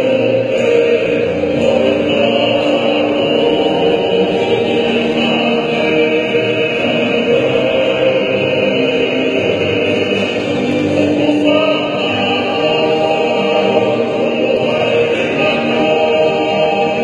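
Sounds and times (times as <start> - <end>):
group of men singing: 0.0 - 17.0
strummed acoustic guitars: 0.0 - 17.0.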